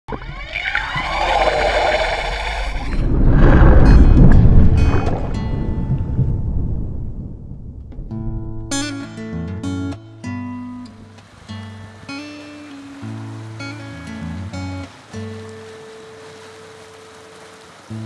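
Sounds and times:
gliding swirling tones: 0:00.1 - 0:05.6
deep rumbling whoosh: 0:01.0 - 0:08.9.

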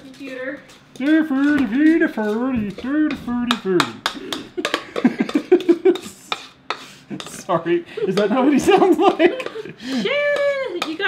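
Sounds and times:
spatula scraping a bowl: 0:00.0 - 0:11.0.

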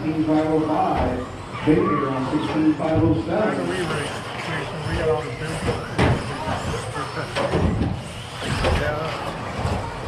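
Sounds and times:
electric toy trucks running: 0:00.0 - 0:10.0
indistinct voices in echoing hall: 0:00.0 - 0:10.0.

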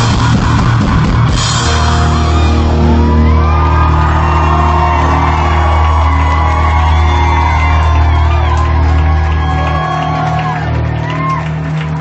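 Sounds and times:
heavy bass: 0:00.0 - 0:12.0
live rock band playing: 0:00.0 - 0:12.0.

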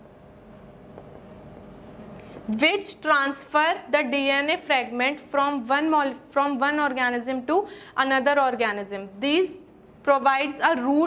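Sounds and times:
marker writing on whiteboard: 0:00.0 - 0:02.2.

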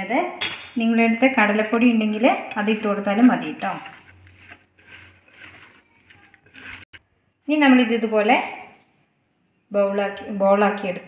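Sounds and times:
woman speaking: 0:00.0 - 0:04.0, 0:07.5 - 0:08.7, 0:09.7 - 0:11.0
hand kneading moist mixture: 0:01.4 - 0:06.9.

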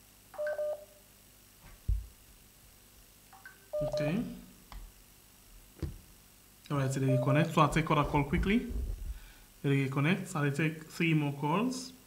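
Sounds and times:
thump: 0:01.8 - 0:02.1.

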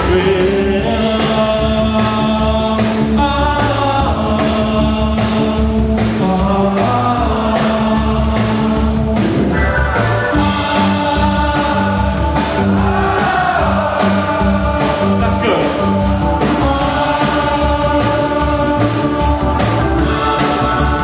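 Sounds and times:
man singing into a microphone: 0:00.0 - 0:09.2, 0:10.6 - 0:19.2
drums keeping a steady beat: 0:00.0 - 0:21.0
electric bass: 0:00.0 - 0:21.0
organ chords: 0:00.0 - 0:21.0.

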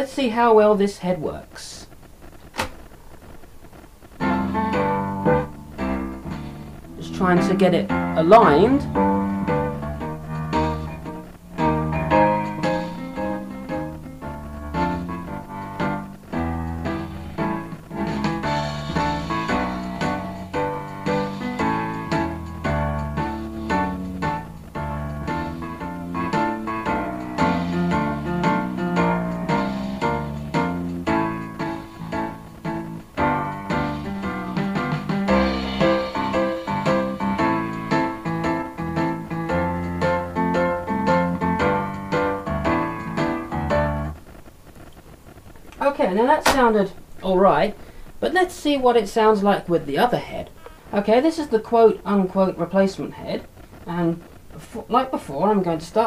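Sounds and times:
muffled music from tape: 0:01.2 - 0:56.0.

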